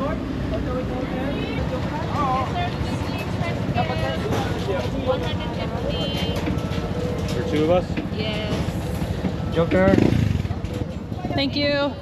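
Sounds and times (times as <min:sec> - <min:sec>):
vehicle engines rumbling: 0:00.0 - 0:12.0.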